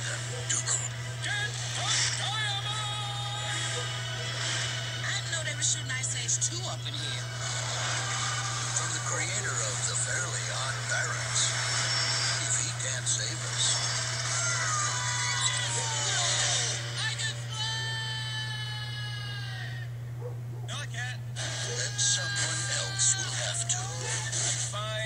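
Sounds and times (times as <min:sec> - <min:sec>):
voices: 0:00.0 - 0:20.0, 0:20.7 - 0:25.0
steady low hum: 0:00.0 - 0:25.0.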